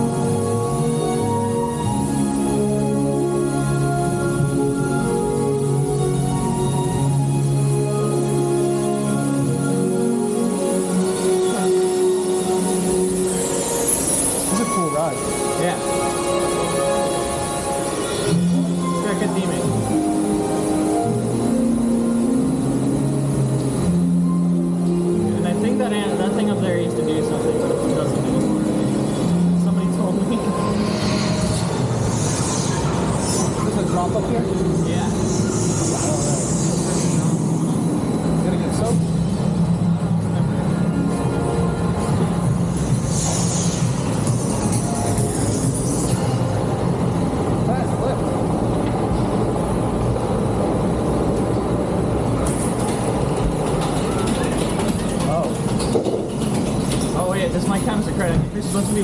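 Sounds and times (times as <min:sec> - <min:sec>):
music with voice track: 0:00.0 - 0:48.3.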